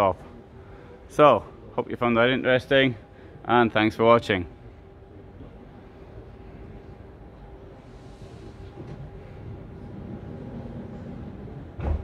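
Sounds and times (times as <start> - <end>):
faint hum: 0.0 - 12.0
thump: 11.8 - 12.0.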